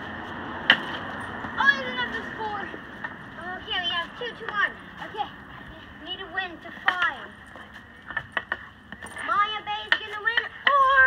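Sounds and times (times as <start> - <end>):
child's raised voice: 1.6 - 2.8, 9.3 - 11.0
hockey sticks clacking on ball: 6.6 - 7.3, 8.0 - 11.0.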